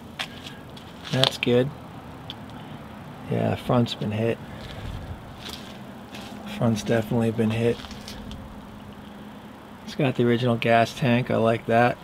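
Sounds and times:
low hum: 1.6 - 10.2.

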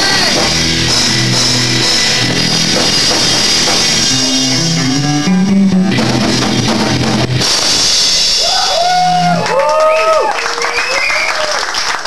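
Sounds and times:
punk rock band playing: 0.0 - 9.7
bass guitar line: 0.0 - 9.8.

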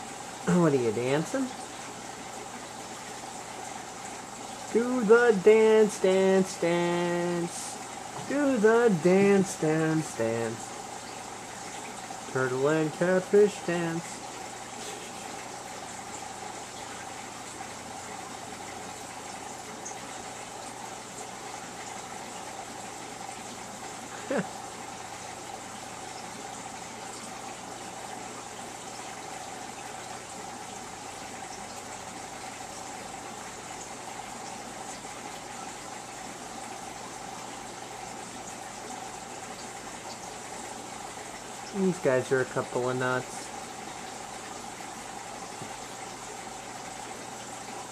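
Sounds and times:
aquarium pump hiss and hum: 0.0 - 47.9.

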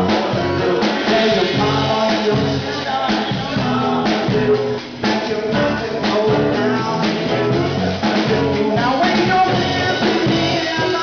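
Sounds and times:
band playing amplified music: 0.0 - 11.0
guitar: 0.0 - 11.0
keyboard: 0.0 - 11.0.

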